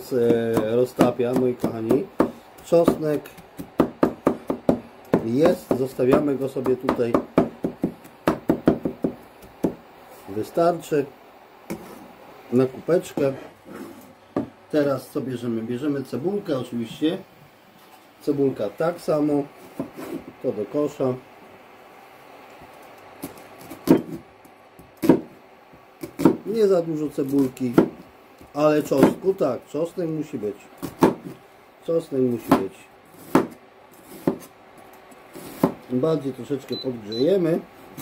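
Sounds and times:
cleaver chopping on wooden board: 0.2 - 9.8, 23.3 - 24.2, 24.8 - 25.3, 26.0 - 26.5, 27.7 - 28.0, 30.8 - 31.4, 32.4 - 34.5, 35.5 - 35.8.

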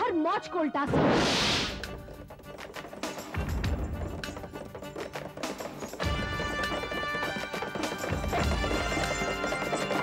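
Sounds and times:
background music: 0.0 - 10.0
horse hooves on dirt: 1.8 - 10.0.

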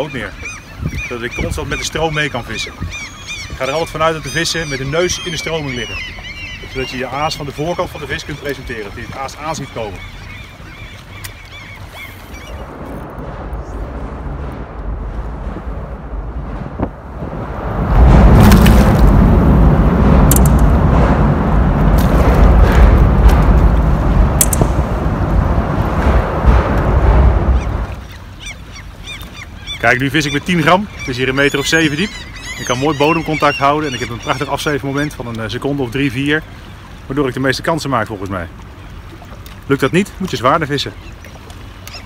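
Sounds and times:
wind buffeting microphone: 0.0 - 37.1
water lapping at hull: 0.0 - 42.0
sharp clicks: 24.4 - 24.8.

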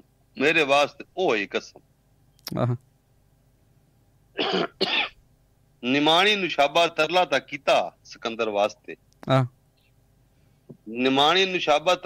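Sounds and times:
man coughing: 4.4 - 5.2.

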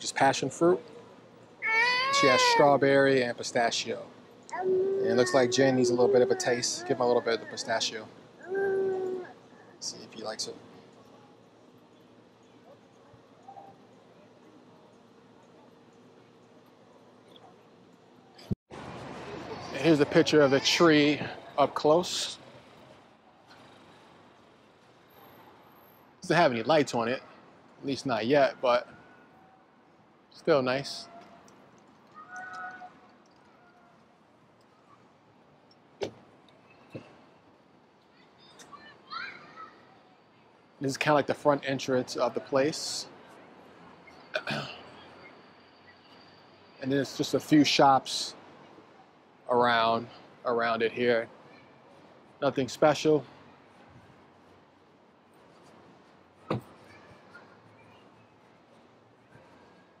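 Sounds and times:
faint outdoor background noise: 0.0 - 60.0.

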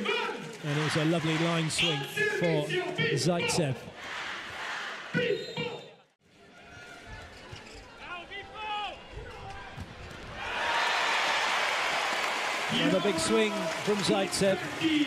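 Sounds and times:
crowd cheering: 0.0 - 2.8, 8.5 - 15.0.

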